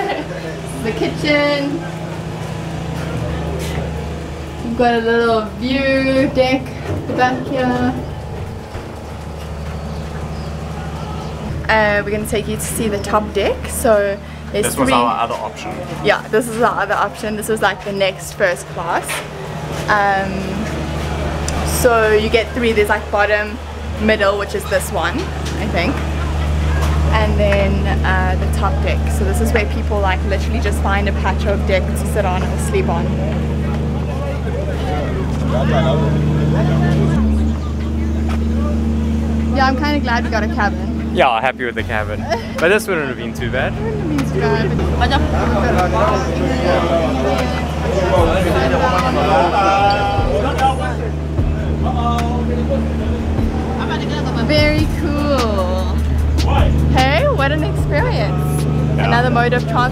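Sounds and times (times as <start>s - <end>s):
people's voices: 0.0s - 59.9s
ship machinery humming: 0.0s - 59.9s.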